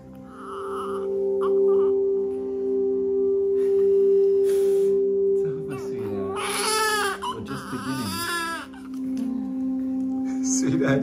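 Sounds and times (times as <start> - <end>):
soft sustained chord: 0.0 - 11.0.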